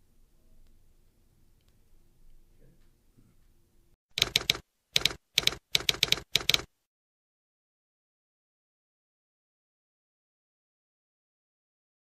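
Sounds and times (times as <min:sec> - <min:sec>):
typewriter keys striking: 0:04.2 - 0:06.7.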